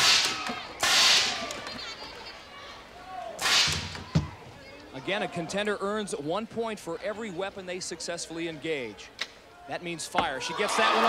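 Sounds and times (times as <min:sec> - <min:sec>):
tennis ball cannon air blast: 0:03.4 - 0:04.0.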